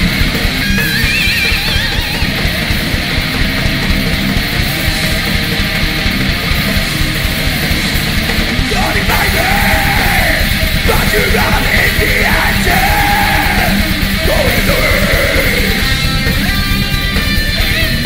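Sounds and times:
fast dense drumming: 0:00.0 - 0:18.0
heavy metal band playing: 0:00.0 - 0:18.0
shouted lead vocal: 0:08.5 - 0:16.5.

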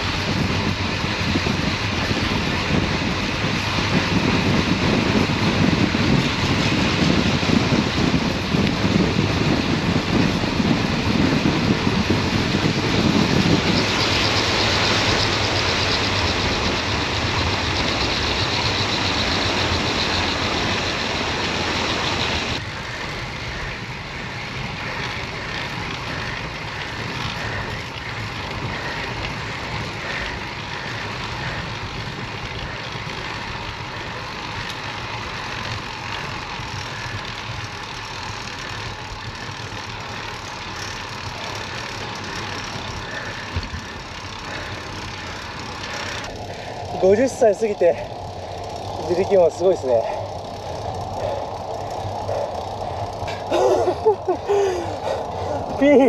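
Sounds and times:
wind noise rushing: 0:00.0 - 0:56.0.

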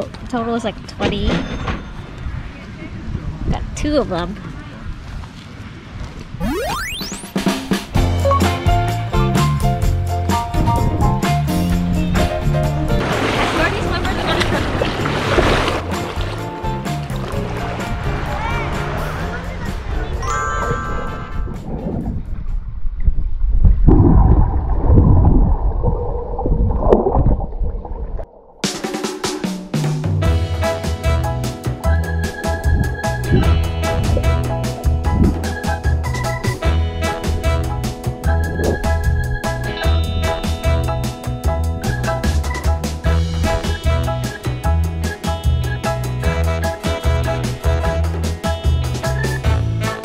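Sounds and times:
rising electronic sweep tone: 0:06.4 - 0:07.6
background music: 0:06.4 - 0:22.2, 0:28.6 - 0:50.0
muffled underwater rumble: 0:21.5 - 0:28.4.

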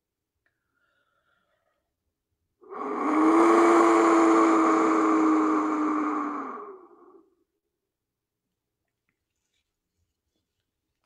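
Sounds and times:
wind whistle blown: 0:02.7 - 0:06.8.

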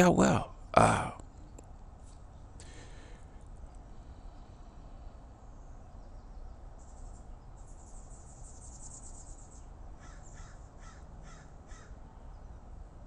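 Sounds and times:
bird harsh calls: 0:06.8 - 0:12.5.

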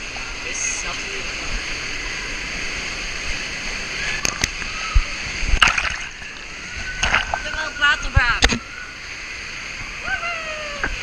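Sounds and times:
water rushing down slide: 0:00.0 - 0:11.0
sharp knocks and splashes: 0:05.4 - 0:08.7.

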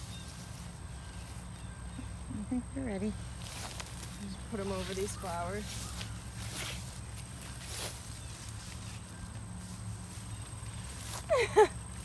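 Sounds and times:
grass rustling: 0:00.0 - 0:12.0.

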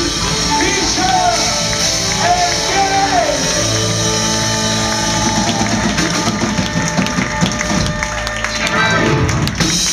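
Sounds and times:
live rock band playing: 0:00.0 - 0:09.9.

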